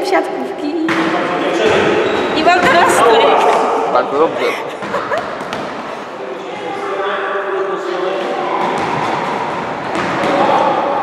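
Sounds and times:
children talking and calling: 2.0 - 11.0.

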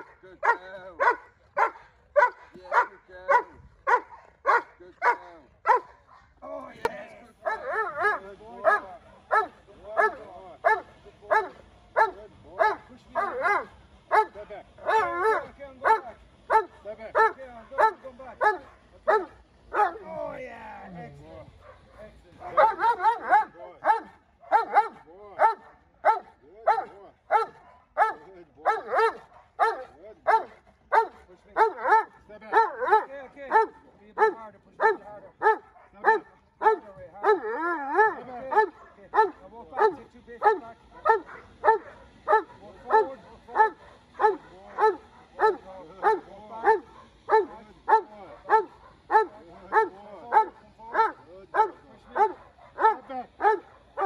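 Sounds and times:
dog barking: 0.0 - 6.4, 7.4 - 20.1, 21.6 - 54.0.

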